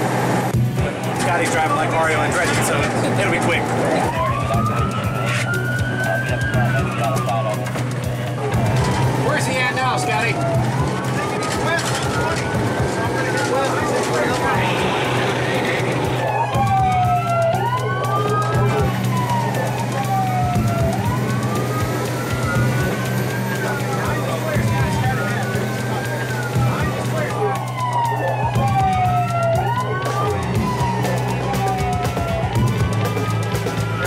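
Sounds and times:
police sirens wailing: 0:00.0 - 0:34.0
vehicle engine drone: 0:00.0 - 0:34.0.

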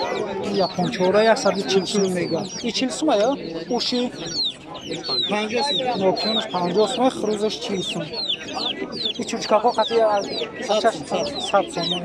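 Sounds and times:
chickens clucking: 0:00.0 - 0:12.0
people talking: 0:00.0 - 0:12.0.

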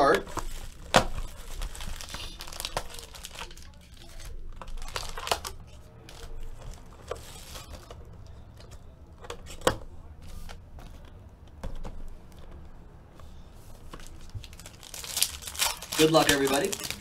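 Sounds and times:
foil wrappers crinkling and tearing: 0:00.0 - 0:08.0, 0:13.9 - 0:17.0.

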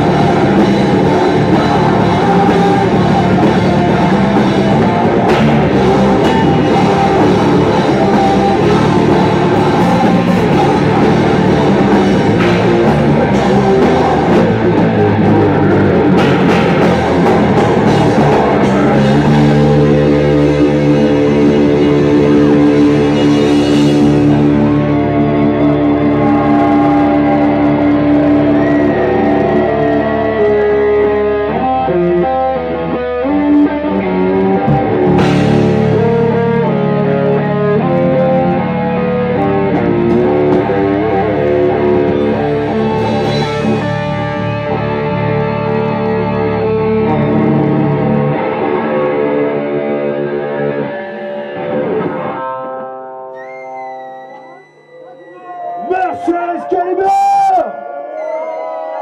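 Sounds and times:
metal band playing: 0:00.0 - 0:57.6.

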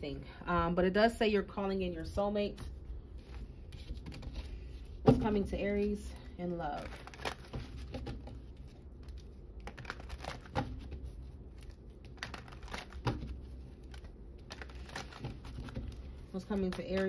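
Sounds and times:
cards shuffling and clicking: 0:06.8 - 0:17.0.

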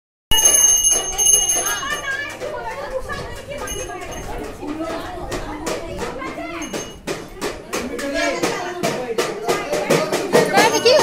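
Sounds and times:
small bell ringing: 0:00.3 - 0:02.8, 0:03.4 - 0:04.6, 0:06.4 - 0:07.1, 0:10.6 - 0:11.0
women talking: 0:01.1 - 0:07.0, 0:10.4 - 0:11.0.

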